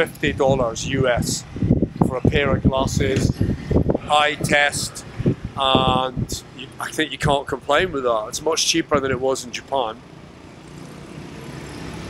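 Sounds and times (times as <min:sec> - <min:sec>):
scooters and cars traffic rumble: 0:00.0 - 0:12.0.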